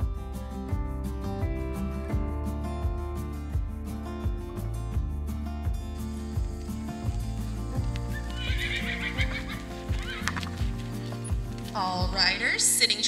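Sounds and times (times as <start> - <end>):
background music with steady beat: 0.0 - 13.0
horse whinnying: 8.1 - 10.7.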